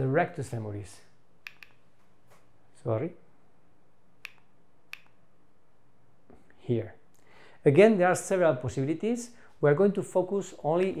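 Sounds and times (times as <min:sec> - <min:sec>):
remote button clicks: 0:01.4 - 0:01.8, 0:04.2 - 0:05.2.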